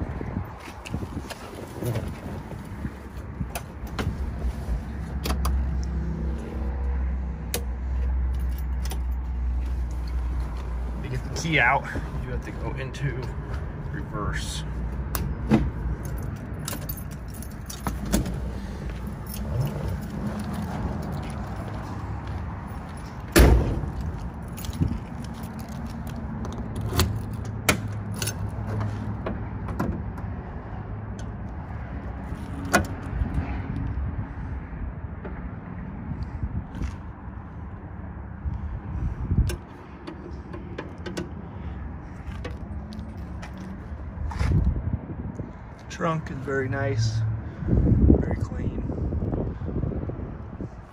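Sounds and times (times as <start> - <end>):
car keys jangling and clicking: 8.2 - 9.4, 15.9 - 28.6
car door shutting: 23.3 - 24.0.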